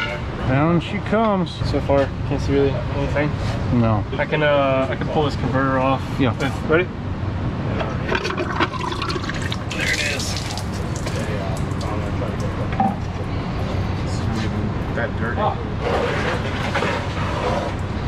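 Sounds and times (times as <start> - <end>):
steady noisy background: 0.0 - 18.0
fluid splashing out: 8.1 - 13.2.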